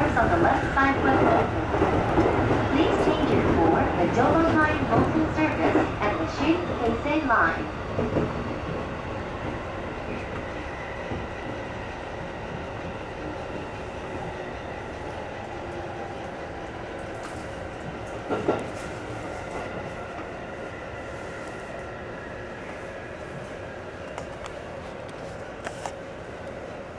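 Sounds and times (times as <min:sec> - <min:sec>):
train wheels rumbling: 0:00.0 - 0:26.9.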